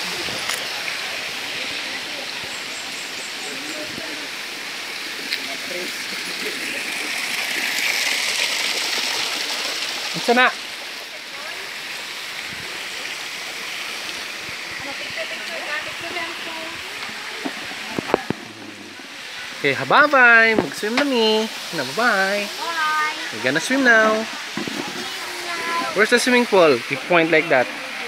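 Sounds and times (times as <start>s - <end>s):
water splashing over stone wall: 0.0s - 28.0s.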